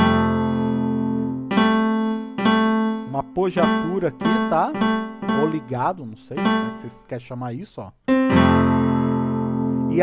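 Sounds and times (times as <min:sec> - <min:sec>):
keyboard piano chord and note: 0:00.0 - 0:07.0, 0:08.1 - 0:10.0.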